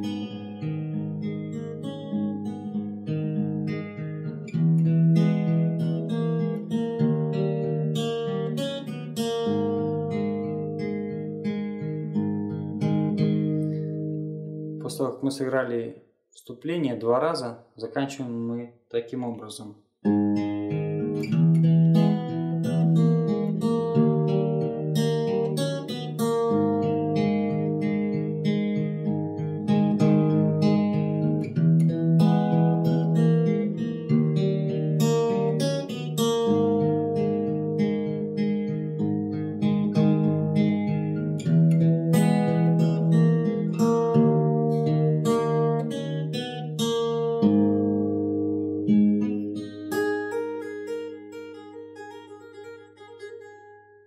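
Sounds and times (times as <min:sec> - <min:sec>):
fingerstyle acoustic guitar: 0:00.0 - 0:15.6, 0:20.0 - 0:54.0.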